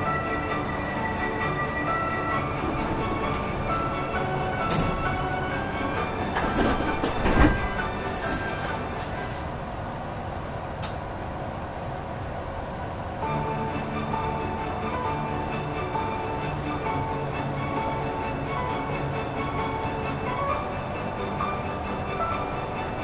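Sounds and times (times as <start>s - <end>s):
slow tune of held notes: 0.0s - 6.6s, 13.2s - 23.0s
train rushing noise: 0.0s - 23.0s.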